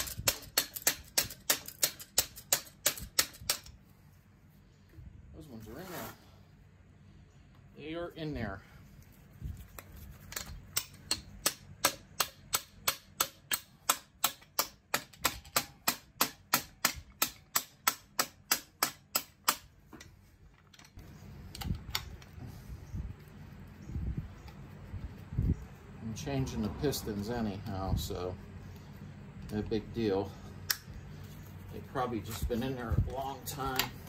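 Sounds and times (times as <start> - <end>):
quiet knocks and scraping: 19.8 - 22.9.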